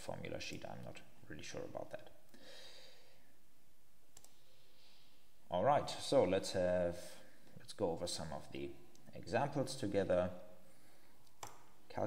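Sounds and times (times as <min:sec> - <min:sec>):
faint room hiss: 0:00.0 - 0:12.0
computer mouse click: 0:04.1 - 0:04.4, 0:11.2 - 0:11.7.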